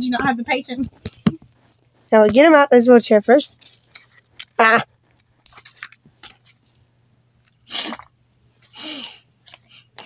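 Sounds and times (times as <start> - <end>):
paper and cloth rustling: 3.5 - 6.8.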